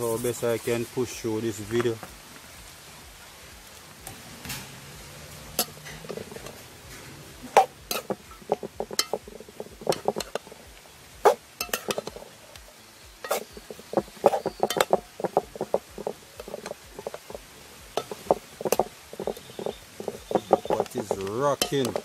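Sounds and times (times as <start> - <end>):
metal spoon scraping metal pot: 5.5 - 12.5, 13.2 - 22.0.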